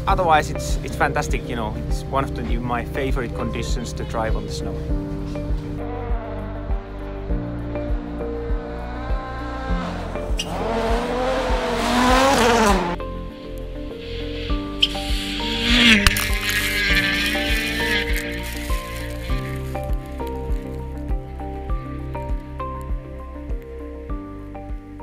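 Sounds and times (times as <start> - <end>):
background music with steady beat: 0.0 - 25.0
rally car engine revving: 8.0 - 13.0, 14.0 - 19.6.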